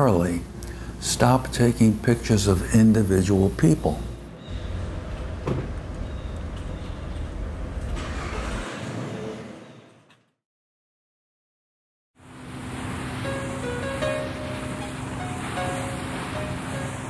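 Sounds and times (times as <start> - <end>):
traffic rumble: 0.0 - 9.6
faint knock: 5.2 - 5.8
water rushing from boat wake: 12.2 - 17.0
music: 13.2 - 17.0.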